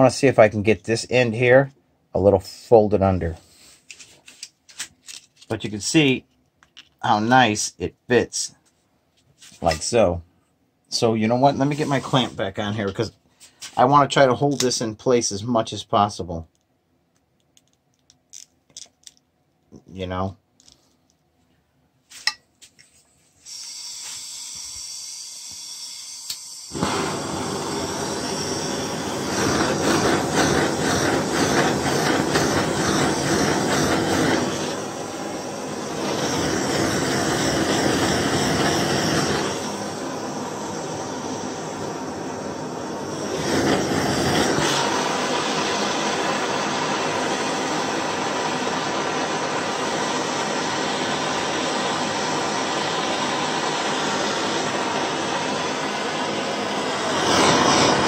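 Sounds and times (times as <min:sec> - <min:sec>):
blowtorch roaring: 0:23.5 - 0:58.0.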